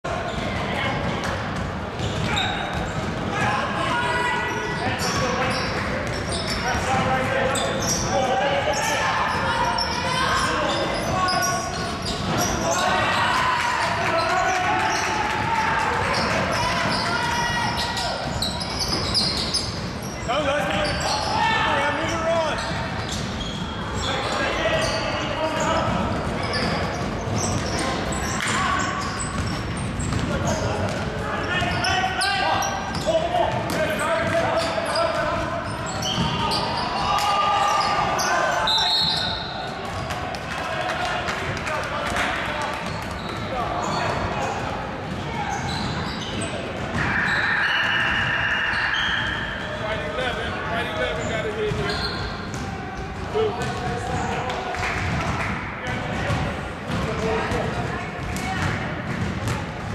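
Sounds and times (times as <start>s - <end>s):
players calling out: 2.0s - 59.6s.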